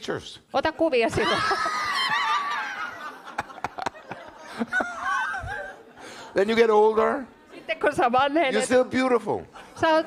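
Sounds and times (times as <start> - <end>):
high-pitched laughter: 1.2 - 3.2, 4.4 - 5.8.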